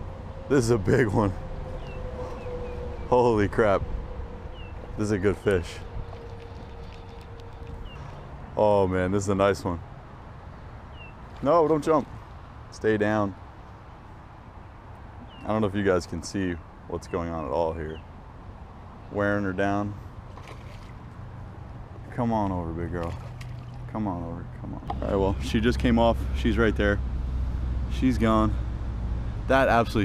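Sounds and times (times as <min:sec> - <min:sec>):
wind rumble on microphone: 0:00.0 - 0:08.6
fish splashing at water surface: 0:06.0 - 0:07.8, 0:20.3 - 0:21.0, 0:23.0 - 0:23.9.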